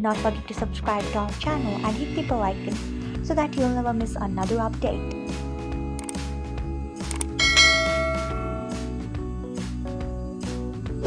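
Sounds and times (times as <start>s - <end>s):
background music: 0.0s - 11.0s
bell ding: 7.4s - 8.9s.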